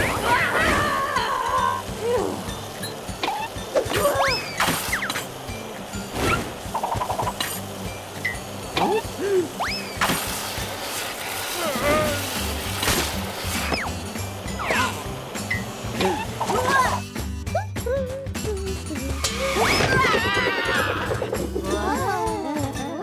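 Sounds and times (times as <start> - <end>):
wordless squeals and yelps: 0.0 - 1.8, 19.3 - 21.3
cartoon background music: 0.0 - 23.0
sharp hits and whooshes: 6.1 - 7.6.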